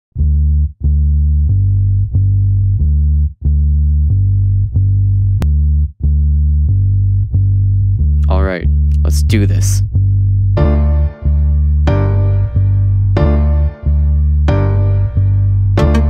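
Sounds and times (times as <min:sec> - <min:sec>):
plucked bass line: 0:00.2 - 0:16.0.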